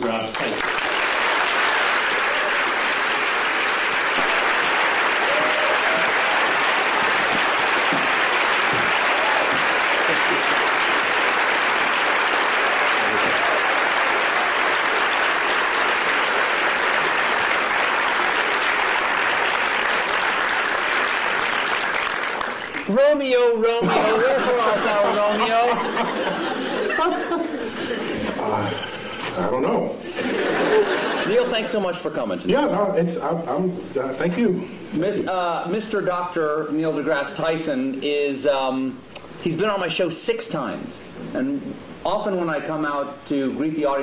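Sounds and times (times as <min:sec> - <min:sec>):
audience applause: 0:00.0 - 0:23.0.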